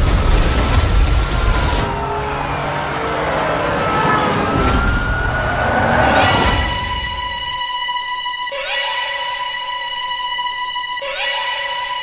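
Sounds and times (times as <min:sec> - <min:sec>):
police sirens wailing: 0:01.1 - 0:12.0.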